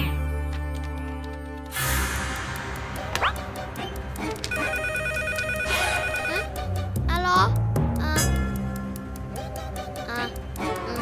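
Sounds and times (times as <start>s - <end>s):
background music: 0.0s - 11.0s
mobile phone ringing: 4.5s - 6.5s.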